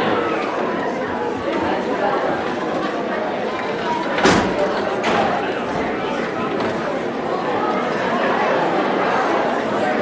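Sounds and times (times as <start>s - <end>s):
audience chatter: 0.0s - 10.0s.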